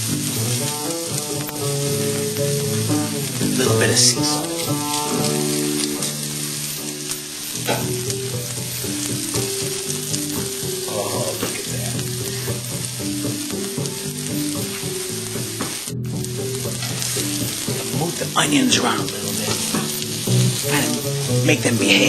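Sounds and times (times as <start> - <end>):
food sizzling in a pan: 0.0 - 22.0.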